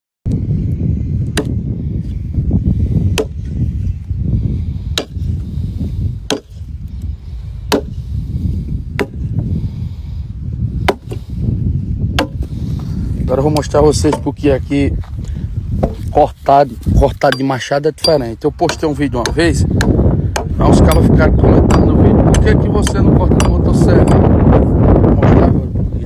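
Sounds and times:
steady low rumble: 0.3 - 26.0
axe chopping a log: 1.2 - 1.6, 3.0 - 3.6, 4.9 - 5.4, 6.2 - 6.7, 7.6 - 8.0, 8.9 - 9.3, 10.8 - 11.2, 12.1 - 12.5, 13.5 - 14.3, 15.8 - 16.1, 17.2 - 24.3.

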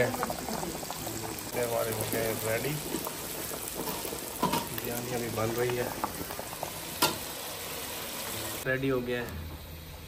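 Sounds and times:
water boiling in a pot: 0.0 - 10.0.

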